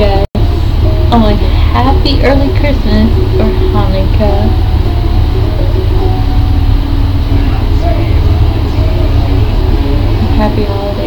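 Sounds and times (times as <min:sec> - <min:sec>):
person's voice: 0:00.0 - 0:00.3, 0:01.1 - 0:04.6, 0:07.4 - 0:11.0
loud low rumble: 0:00.0 - 0:11.0.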